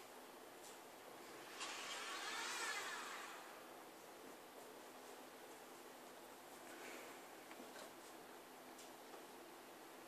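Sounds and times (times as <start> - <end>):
robot electric motor whine: 1.4 - 3.6.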